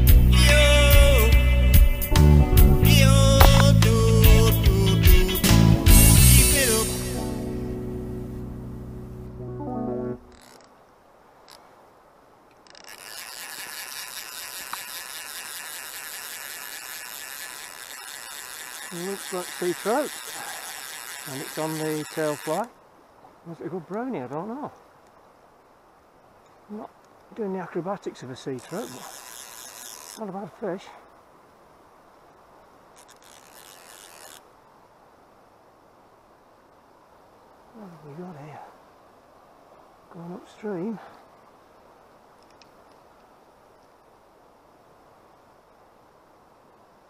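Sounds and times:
music track: 2.0 - 10.3
river water rushing: 10.2 - 47.0
rubbing scraping near microphone: 28.6 - 30.3.

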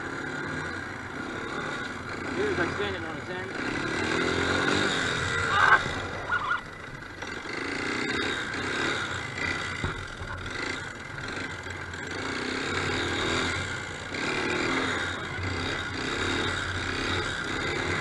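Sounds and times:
atv engine revving: 0.0 - 18.0.

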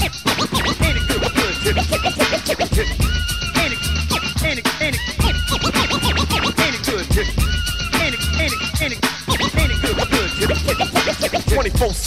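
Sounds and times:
hip-hop drum beat and bass: 0.0 - 12.0
turntable scratching: 0.0 - 12.0.

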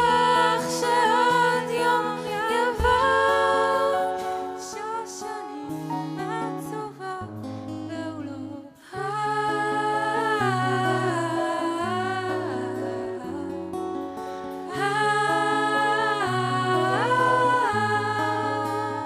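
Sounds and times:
woman singing into a microphone: 0.0 - 13.9, 14.5 - 19.0
acoustic guitar: 0.0 - 19.0.

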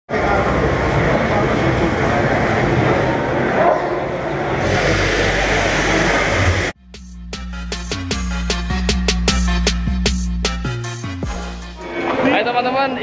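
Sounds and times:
indistinct voices in a hall: 0.1 - 6.7, 11.7 - 13.0.

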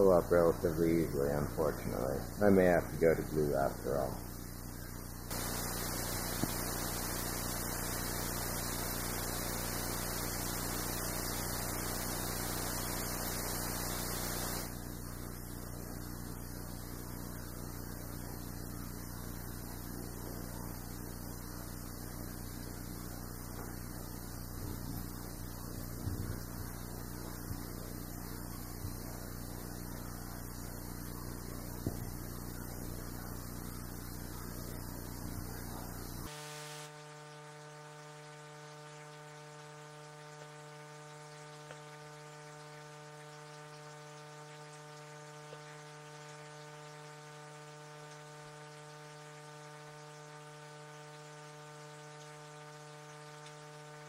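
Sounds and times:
electrical hiss: 0.0 - 54.0
mains hum: 0.0 - 54.0.

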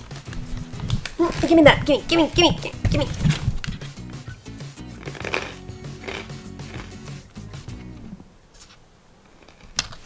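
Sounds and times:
background music with stepping bass: 0.0 - 8.2.

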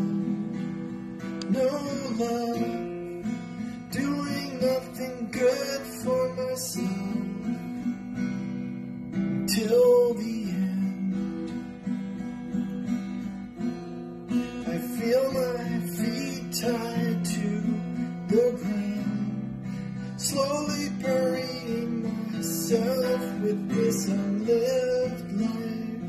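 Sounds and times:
person singing: 0.0 - 8.0, 9.4 - 11.8, 14.6 - 26.0
strummed acoustic guitar: 0.0 - 26.0.

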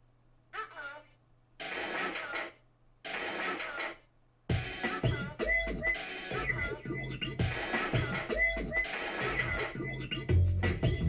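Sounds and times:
telephone-like voice clip: 0.6 - 11.0.

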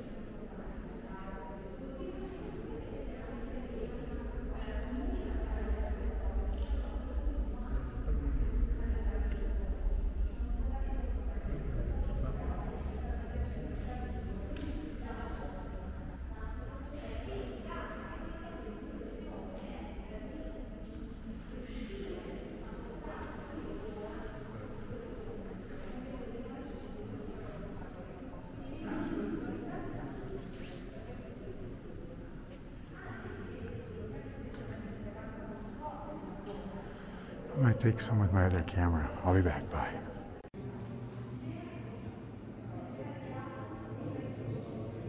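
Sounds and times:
faint voices murmuring: 0.0 - 45.0
people talking quietly: 0.0 - 45.0.

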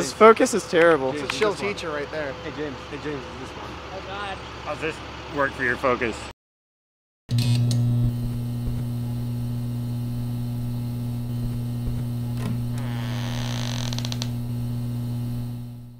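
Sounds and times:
low electrical hum: 7.4 - 15.9
door creaking open: 11.4 - 14.6.

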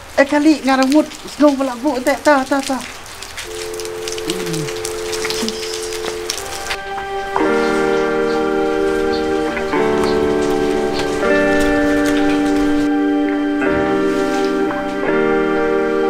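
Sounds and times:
steady rain falling: 0.0 - 16.0
held two-note tone: 3.5 - 9.2
background music of held chords: 5.9 - 16.0.

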